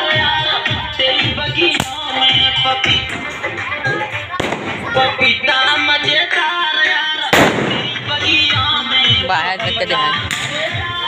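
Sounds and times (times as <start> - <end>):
loud music: 0.0 - 11.0
firecracker crack: 0.8 - 11.0
firecracker bang: 4.4 - 5.8, 7.3 - 9.2.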